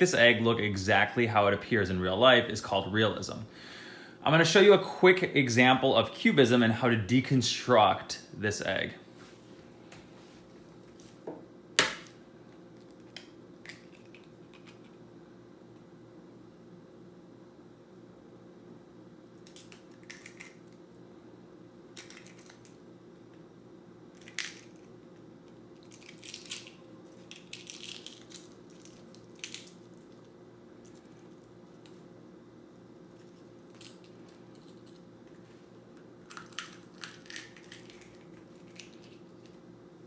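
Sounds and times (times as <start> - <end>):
faint hum: 0.0 - 40.0
eggshell crackling: 25.8 - 30.2, 36.2 - 39.6.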